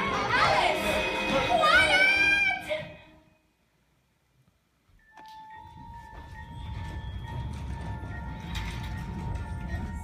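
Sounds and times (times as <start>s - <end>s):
backing music: 0.0s - 3.3s, 5.2s - 10.0s.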